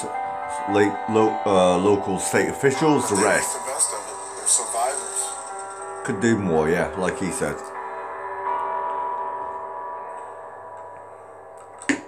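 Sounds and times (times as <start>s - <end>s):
sustained bell-like chord: 0.0s - 11.9s.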